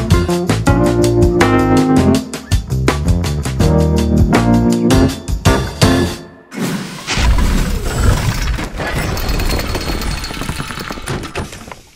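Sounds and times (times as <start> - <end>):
logo music: 0.0 - 6.3.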